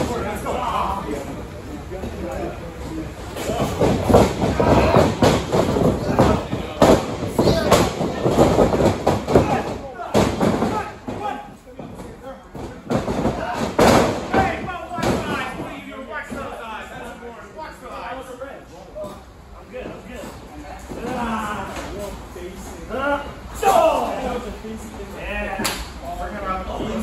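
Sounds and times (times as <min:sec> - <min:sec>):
voices: 0:00.0 - 0:27.0.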